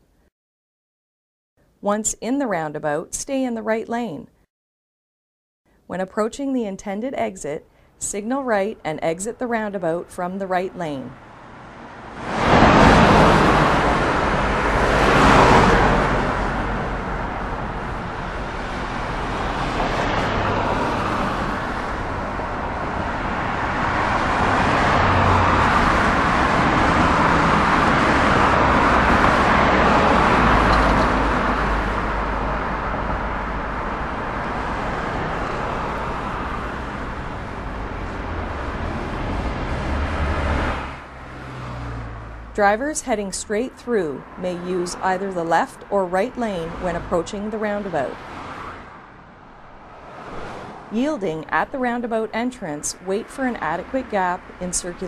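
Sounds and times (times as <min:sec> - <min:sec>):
cars driving by: 0:08.5 - 0:55.0.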